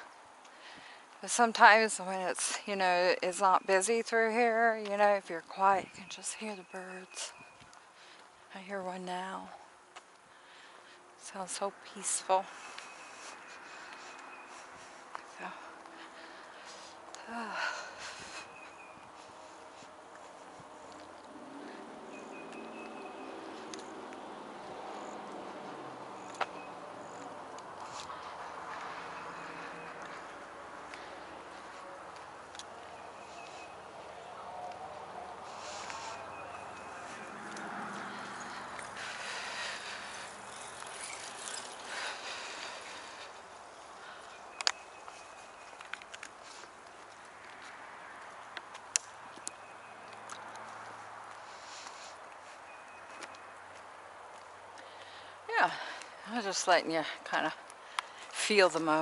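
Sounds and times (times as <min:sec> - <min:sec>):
footsteps on asphalt: 0:00.0 - 0:59.0
bird chirping: 0:18.2 - 0:19.7, 0:20.8 - 0:24.0, 0:26.1 - 0:47.0.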